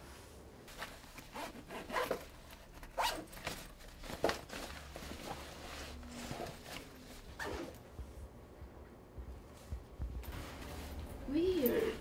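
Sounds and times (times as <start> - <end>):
backpack zipper being pulled open: 1.3 - 2.2, 7.4 - 7.8.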